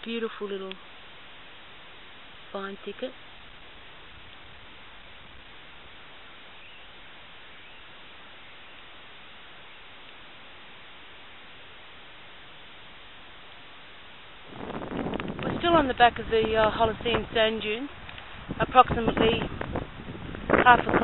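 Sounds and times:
steady background hiss: 0.0s - 21.0s.

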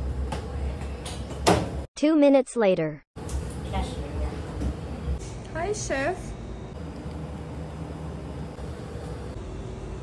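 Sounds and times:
low hum of commercial kitchen: 0.0s - 1.9s, 3.2s - 10.0s.

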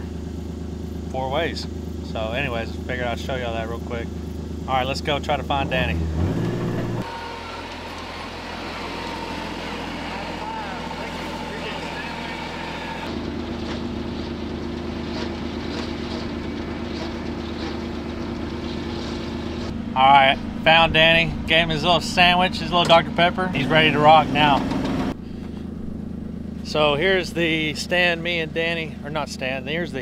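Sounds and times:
tractor engine droning: 0.0s - 30.0s
utility vehicle engine running: 0.0s - 30.0s.

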